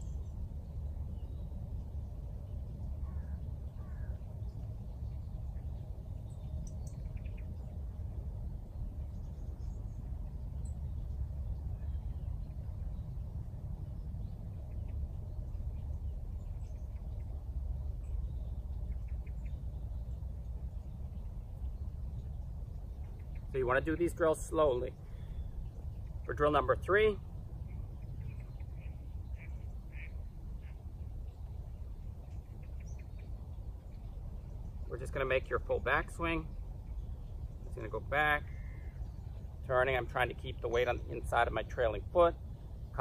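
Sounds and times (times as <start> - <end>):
wind rumbling on microphone: 0.0 - 43.0
faint bird chirps: 27.6 - 39.6.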